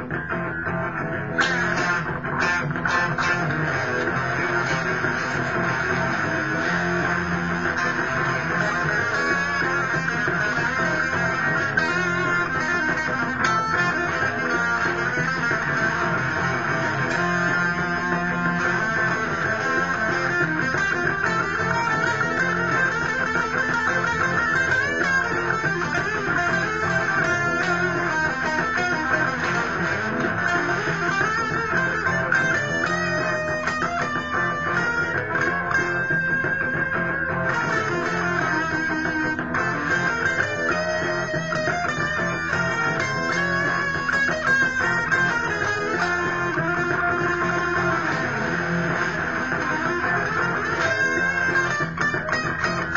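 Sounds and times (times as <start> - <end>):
electric guitar playing: 0.0 - 52.9.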